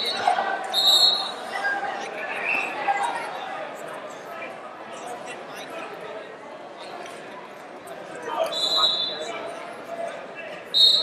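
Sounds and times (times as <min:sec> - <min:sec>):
referee's whistle blasts: 0:00.0 - 0:01.5, 0:08.4 - 0:09.3, 0:10.7 - 0:11.0
crowd chatter: 0:00.0 - 0:11.0.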